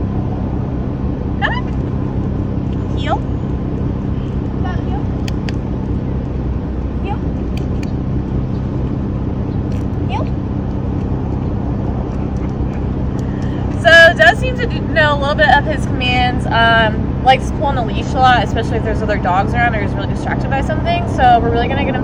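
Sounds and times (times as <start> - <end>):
engine idling hum: 0.0 - 22.0.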